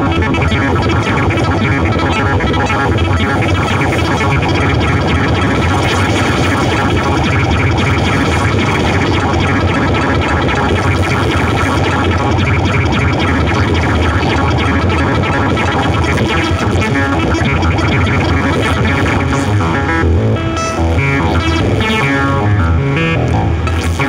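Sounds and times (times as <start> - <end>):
synthesizer noise drone: 0.0 - 24.0.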